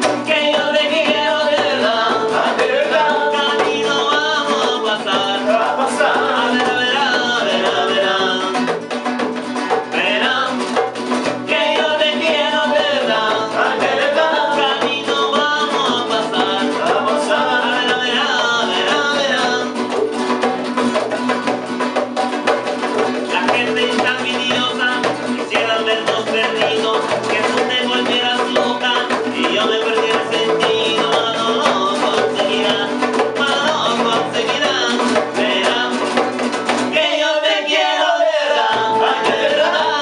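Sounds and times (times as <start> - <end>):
voices singing: 0.0 - 21.3, 22.9 - 40.0
acoustic guitars strumming: 0.0 - 40.0
hand drum: 0.0 - 40.0.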